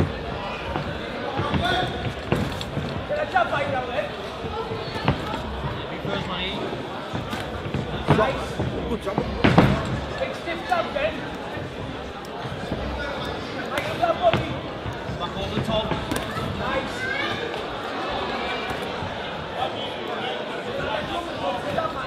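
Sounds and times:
crowd shouting: 0:09.3 - 0:22.0.

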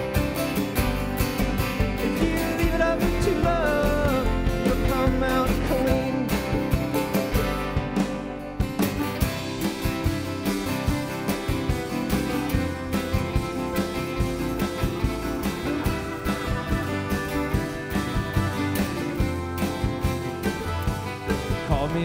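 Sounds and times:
drum kit steady beat: 0:00.0 - 0:22.0
picked mandolin: 0:00.0 - 0:22.0
strummed acoustic guitar: 0:00.0 - 0:22.0
upright bass: 0:00.0 - 0:22.0.

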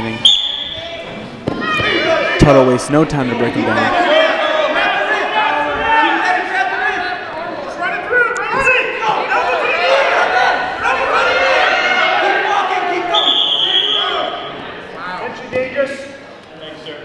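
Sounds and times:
referee's whistle: 0:00.2 - 0:01.0, 0:13.1 - 0:14.5
people shouting: 0:00.6 - 0:02.6, 0:03.7 - 0:14.6.

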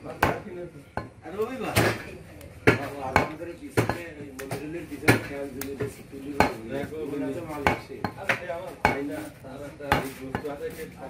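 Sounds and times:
cleaver chopping on wooden block: 0:00.1 - 0:00.5, 0:02.6 - 0:06.6, 0:07.6 - 0:09.1, 0:09.9 - 0:10.5.

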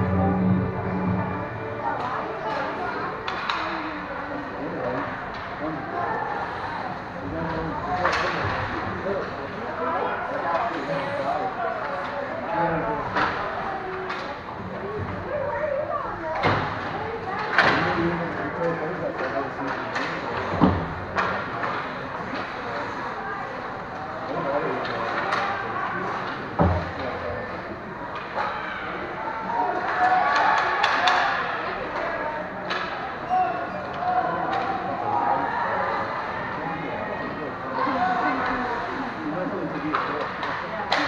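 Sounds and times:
spectators voices and shouts: 0:00.0 - 0:41.0.

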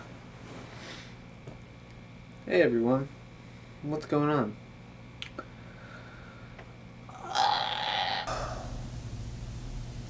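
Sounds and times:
faint hum: 0:00.0 - 0:10.0
man's raspy throat sound: 0:07.1 - 0:08.7.

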